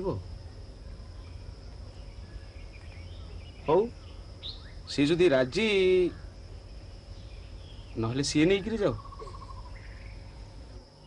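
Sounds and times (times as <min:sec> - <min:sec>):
low background hum and hiss: 0:00.0 - 0:11.0.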